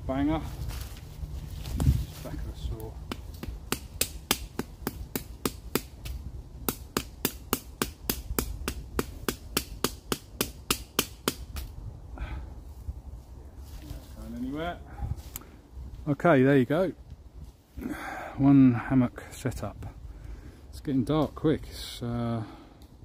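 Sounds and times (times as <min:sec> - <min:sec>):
peg being hammered: 0:06.6 - 0:11.6.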